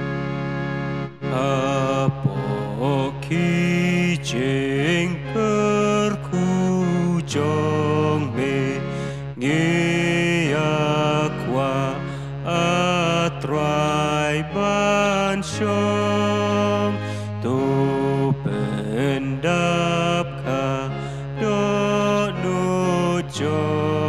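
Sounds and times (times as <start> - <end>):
electronic organ chords: 0.0 - 24.0
person singing a hymn: 1.2 - 24.0.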